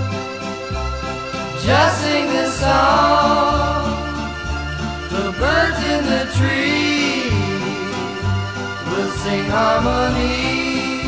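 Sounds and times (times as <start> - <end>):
pop song with vocals: 1.5 - 4.4, 5.0 - 11.0.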